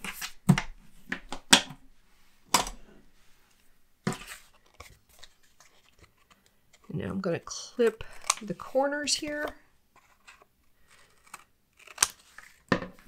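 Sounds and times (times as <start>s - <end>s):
paper rustling and tearing: 7.8s - 12.7s.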